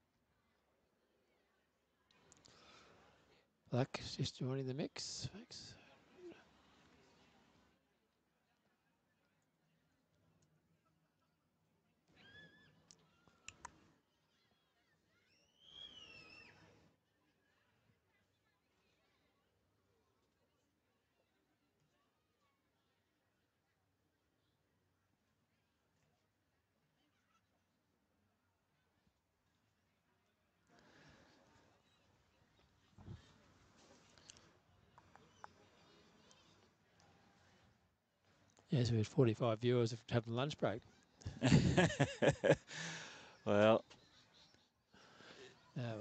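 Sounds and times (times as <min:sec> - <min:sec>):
faint outdoor background: 0:00.0 - 0:46.0.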